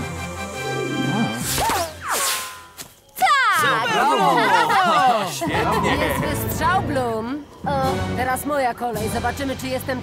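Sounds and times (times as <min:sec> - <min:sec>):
background music: 0:00.0 - 0:02.5, 0:03.6 - 0:10.0.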